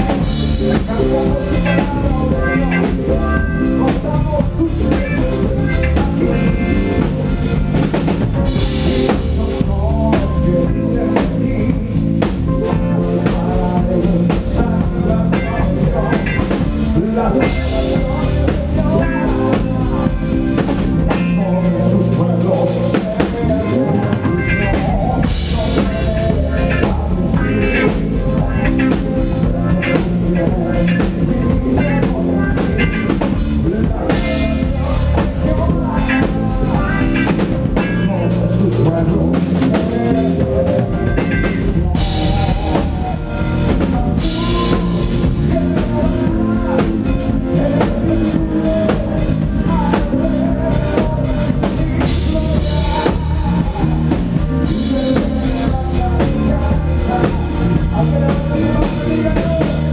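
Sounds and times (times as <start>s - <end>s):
bass guitar: 0.0s - 59.9s
drum kit beat: 0.0s - 59.9s
electric guitar: 0.0s - 59.9s
lead singer: 0.0s - 59.9s.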